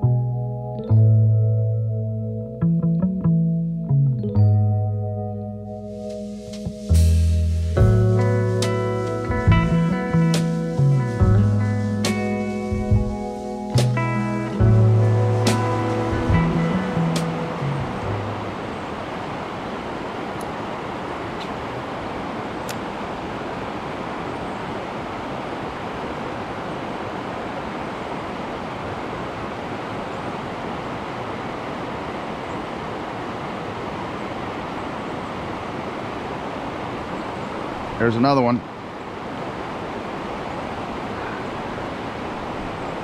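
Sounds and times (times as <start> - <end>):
guitar music: 0.0 - 18.8
stream rushing over a weir: 8.1 - 43.0.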